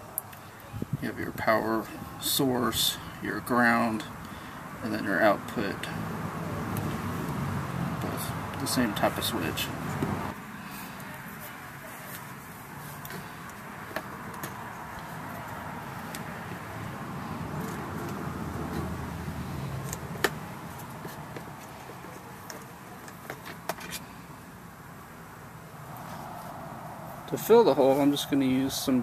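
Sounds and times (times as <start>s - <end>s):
outdoor background hum: 0.0s - 29.0s.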